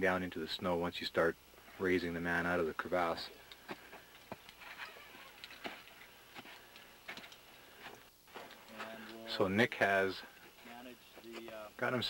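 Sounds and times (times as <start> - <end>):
faint irregular clicks and taps: 3.4 - 9.3, 10.4 - 11.6.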